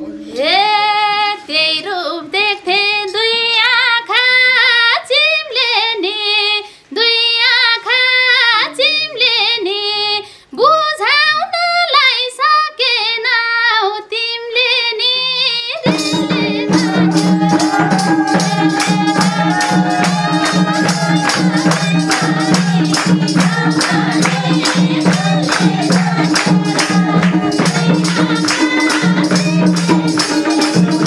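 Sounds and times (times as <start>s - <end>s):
woman singing folk song: 0.3s - 31.0s.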